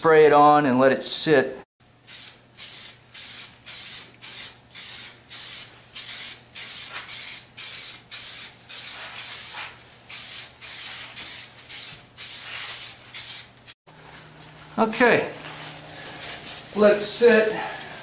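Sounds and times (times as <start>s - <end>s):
aerosol can spraying in bursts: 2.1s - 13.8s.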